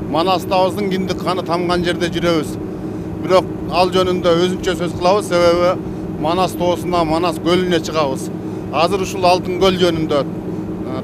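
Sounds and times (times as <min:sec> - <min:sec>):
motorboat engine running: 0:00.0 - 0:11.0
speech: 0:00.1 - 0:02.6, 0:03.2 - 0:10.3.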